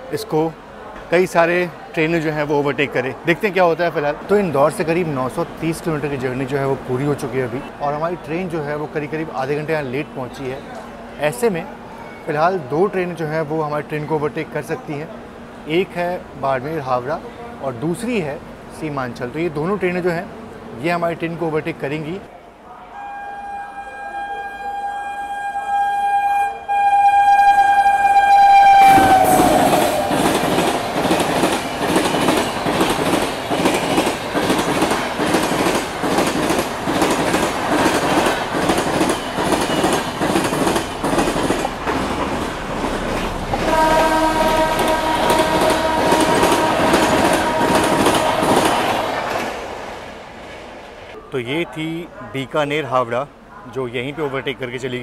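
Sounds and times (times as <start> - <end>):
train horn: 22.9 - 30.8, 43.6 - 49.2
train wheels clickety-clack: 28.9 - 49.7.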